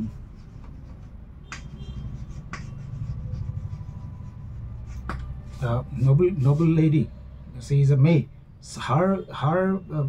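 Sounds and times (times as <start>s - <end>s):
chalk taps: 0.0s - 3.9s, 4.8s - 5.6s
chalk writing on a chalkboard: 0.0s - 6.8s.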